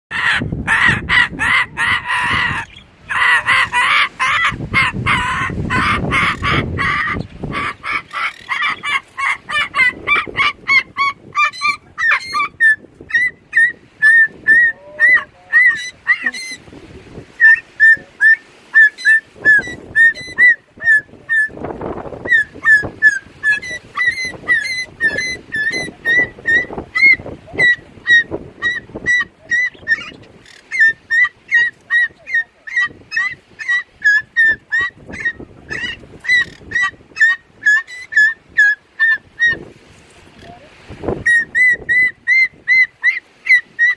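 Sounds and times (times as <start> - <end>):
cockatoo harsh squawks: 0.1 - 16.7, 17.3 - 21.6, 22.2 - 39.6
cockatoo high chirps: 0.2 - 16.7, 17.3 - 39.6, 41.2 - 43.9.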